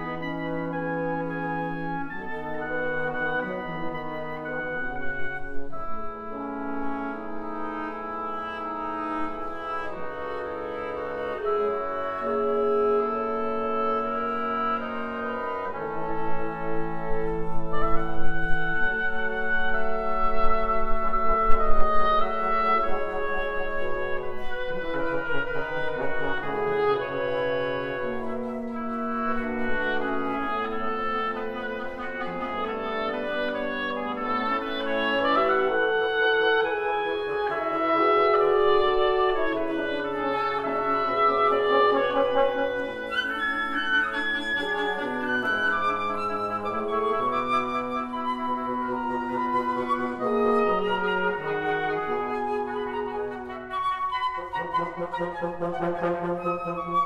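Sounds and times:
wind quintet playing chamber music: 0:00.0 - 0:57.0.

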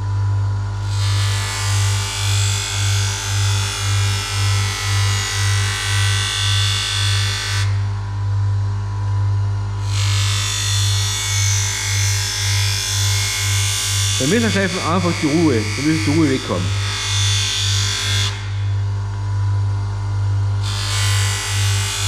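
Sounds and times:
bench grinder motor humming: 0:09.8 - 0:18.7.

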